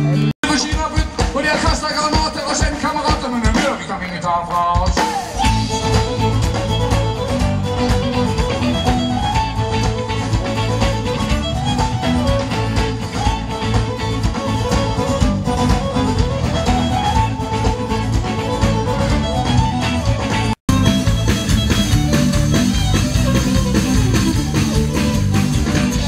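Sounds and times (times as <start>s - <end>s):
drum kit beat: 0.0s - 26.0s
guitar: 0.0s - 26.0s
fiddle melody: 5.2s - 26.0s.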